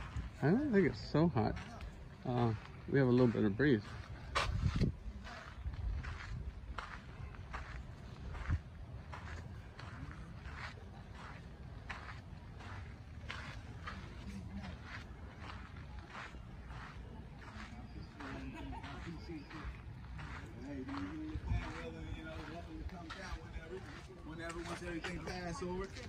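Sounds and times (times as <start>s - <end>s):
footsteps walking: 0.0s - 26.0s.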